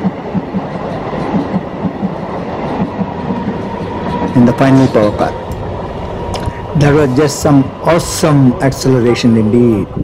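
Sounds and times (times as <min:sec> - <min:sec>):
train coaches rushing past: 0:00.0 - 0:10.0.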